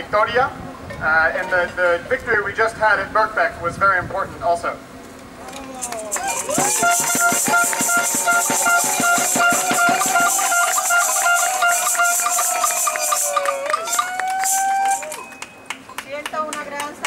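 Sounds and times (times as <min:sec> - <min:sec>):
hand shakers rattling: 0:05.8 - 0:15.6
regular beats: 0:06.0 - 0:17.0
long wavering pitched tones: 0:06.1 - 0:15.5
pulsing higher tone: 0:06.2 - 0:15.6.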